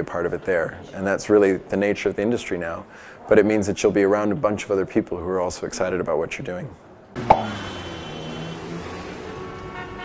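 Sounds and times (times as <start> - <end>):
higher held tones: 7.2 - 8.8.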